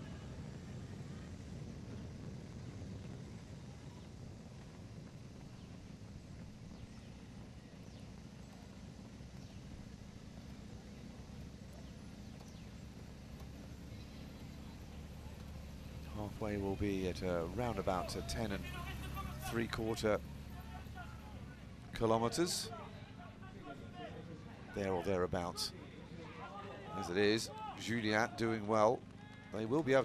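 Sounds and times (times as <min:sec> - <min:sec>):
vehicle rumble and road noise: 0:00.0 - 0:30.0.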